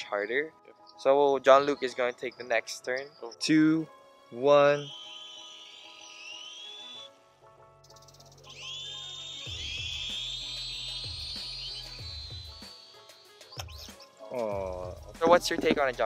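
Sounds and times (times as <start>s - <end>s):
toy quadcopter motors whining: 4.3s - 7.1s, 8.0s - 14.2s
background music with low beat: 7.4s - 16.0s.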